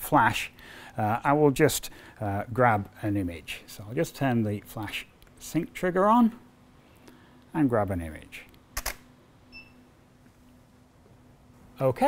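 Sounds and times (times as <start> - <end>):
faint hum: 0.0 - 12.0
faint electronic beep: 9.5 - 9.9.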